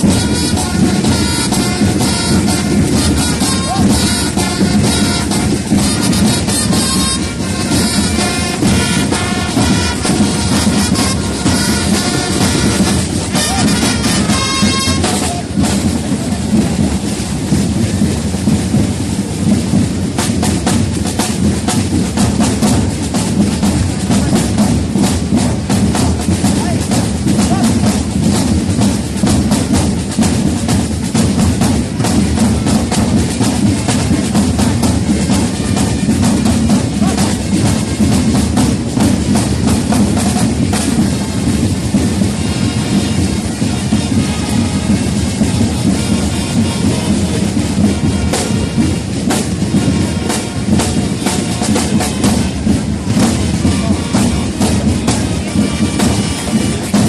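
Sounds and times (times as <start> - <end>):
marching snare drums: 0.0 - 57.0.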